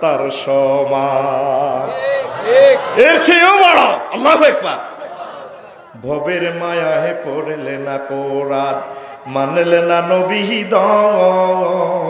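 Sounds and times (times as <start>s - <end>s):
man singing long held notes: 6.0s - 12.0s.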